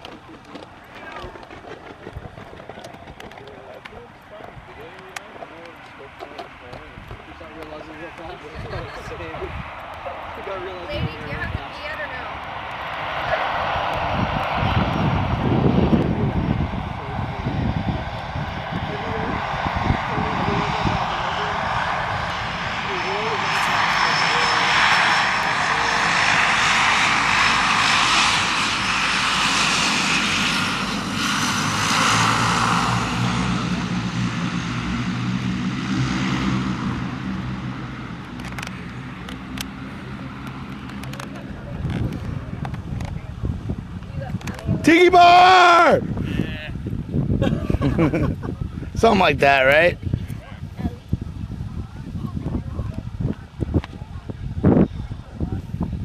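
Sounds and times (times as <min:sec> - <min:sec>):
propeller airplane passing overhead: 0:00.0 - 0:56.0.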